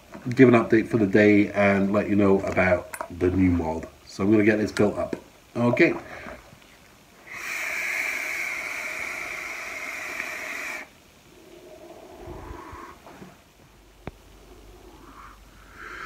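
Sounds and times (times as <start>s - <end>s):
vape coil hissing: 7.2s - 13.0s
breathy exhale: 7.2s - 13.4s, 14.3s - 16.0s.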